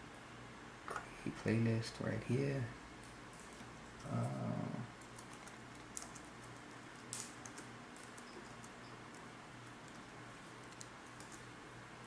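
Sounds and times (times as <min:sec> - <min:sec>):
low steady hum: 0:00.0 - 0:12.0
person saying uh: 0:04.0 - 0:04.9.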